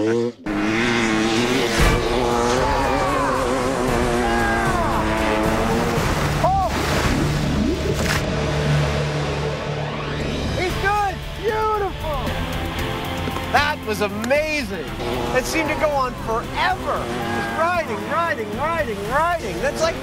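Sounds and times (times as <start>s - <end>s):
dirt bike engine running hard: 0.0s - 6.6s, 8.3s - 20.0s
excited shouts: 2.5s - 5.2s, 15.4s - 17.8s.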